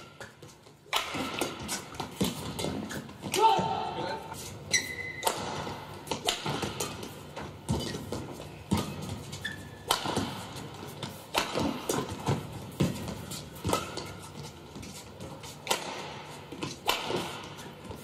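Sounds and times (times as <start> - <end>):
racket hitting shuttlecock: 0.0 - 4.1, 4.8 - 18.0
court shoes squeaking: 0.0 - 18.0.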